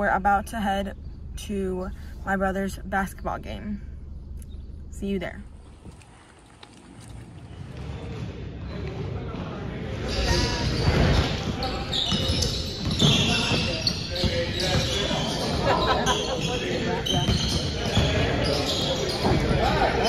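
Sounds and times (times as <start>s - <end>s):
voices in a large gym: 0.0s - 20.0s
basketball bouncing on hardwood: 10.8s - 15.2s.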